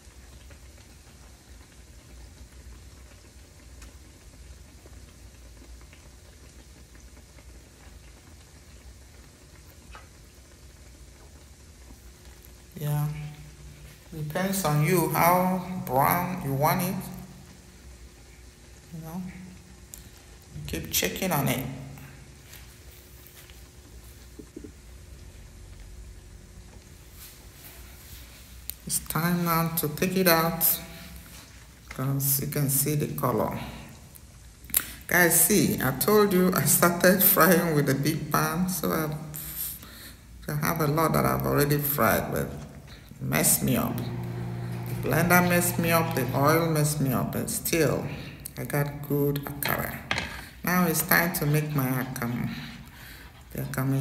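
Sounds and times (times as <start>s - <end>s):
fritters sizzling in oil: 0.0s - 37.8s
small crackles of frying: 0.0s - 54.0s
steady low hum: 39.8s - 49.0s.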